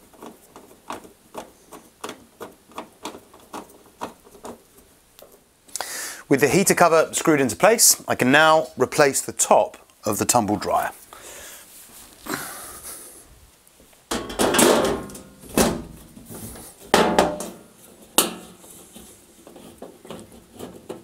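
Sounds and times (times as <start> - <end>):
dryer lid knocking and scraping: 14.1 - 18.7.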